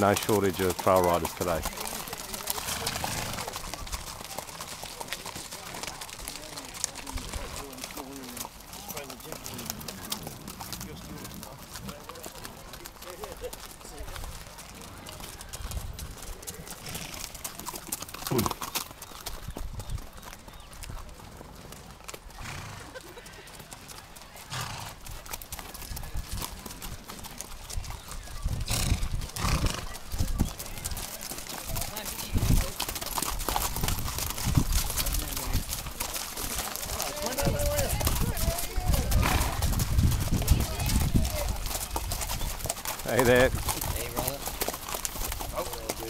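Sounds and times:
people's voices: 0:00.0 - 0:15.8, 0:28.2 - 0:44.7
horse hooves clip-clopping on dirt: 0:00.0 - 0:46.0.

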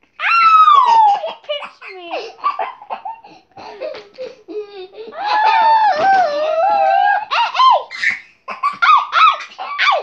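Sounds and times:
child squealing: 0:00.2 - 0:02.1, 0:05.1 - 0:10.0
child laughing: 0:00.5 - 0:10.0.

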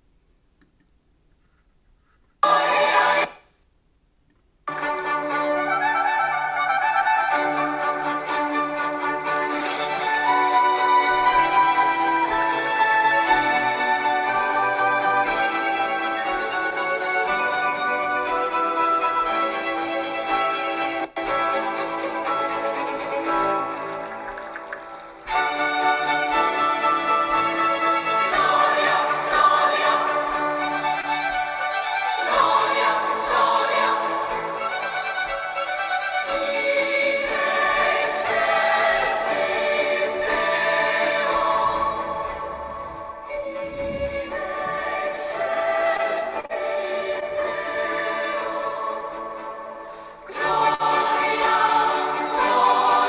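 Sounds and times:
string orchestra chords: 0:02.4 - 0:03.4, 0:04.7 - 0:53.0
women's choir singing: 0:02.4 - 0:03.5, 0:04.7 - 0:53.0.

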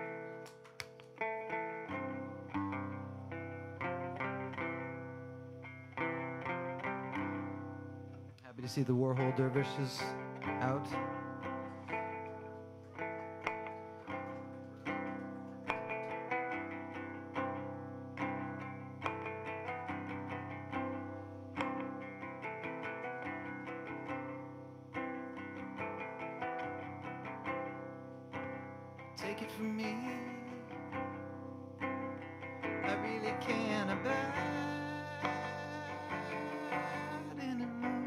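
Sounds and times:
guitar through effects pedals: 0:00.0 - 0:38.0.

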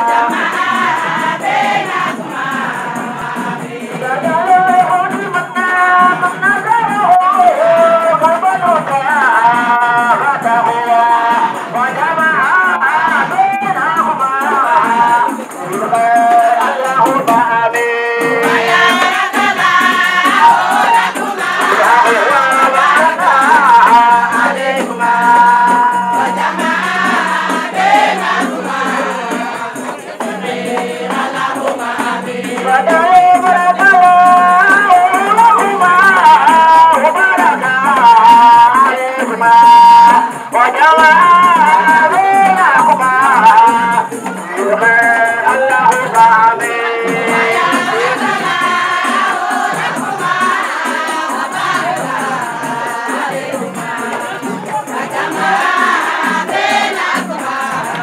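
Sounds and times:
shaken percussion rattle: 0:00.0 - 0:58.0
women singing in chorus: 0:00.0 - 0:58.0.

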